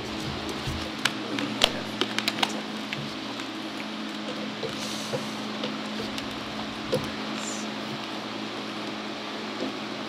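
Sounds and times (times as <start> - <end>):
low electrical hum: 0.0 - 10.0
room noise: 0.0 - 10.0.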